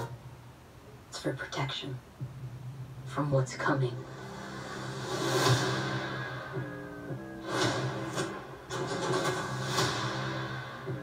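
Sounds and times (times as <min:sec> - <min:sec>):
low drone: 0:03.9 - 0:11.0
dramatic trailer music: 0:04.0 - 0:11.0
loud hits: 0:04.7 - 0:11.0.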